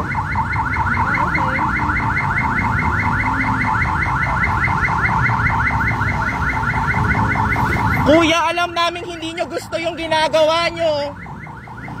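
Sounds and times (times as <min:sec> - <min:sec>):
electronic alarm chirping: 0:00.0 - 0:08.3
low traffic rumble: 0:00.0 - 0:12.0.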